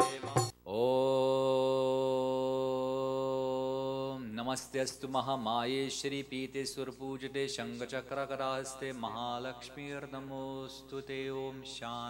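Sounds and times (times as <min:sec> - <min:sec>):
devotional music with drums: 0:00.0 - 0:00.6.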